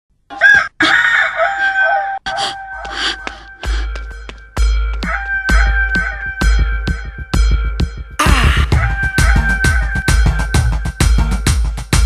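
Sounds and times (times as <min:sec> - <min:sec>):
rooster crowing: 0:00.3 - 0:02.8
deep bass beat: 0:03.6 - 0:12.0.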